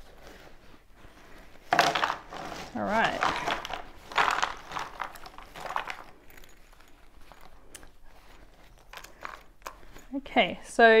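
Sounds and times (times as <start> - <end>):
bag rustling and crinkling: 0.0 - 11.0
puzzle pieces clicking: 3.1 - 6.5.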